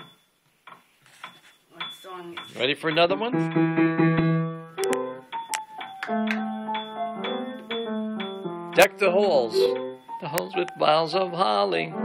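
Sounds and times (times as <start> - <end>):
person speaking: 8.8 - 12.0.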